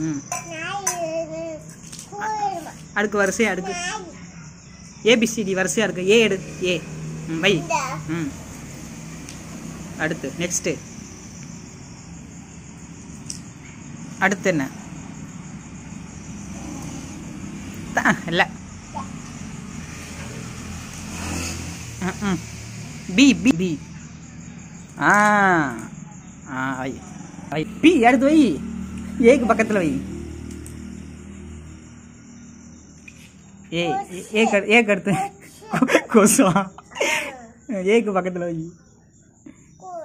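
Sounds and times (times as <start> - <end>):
small child vocalizing: 0.0 - 2.9, 3.6 - 4.4, 7.5 - 8.3, 16.5 - 17.2, 18.9 - 19.2, 33.9 - 36.1, 36.9 - 37.6, 39.8 - 40.0
motor vehicle passing: 1.3 - 38.8.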